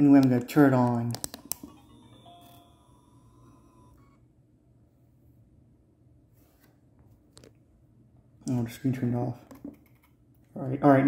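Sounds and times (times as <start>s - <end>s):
camera start-up chime: 1.6s - 4.2s.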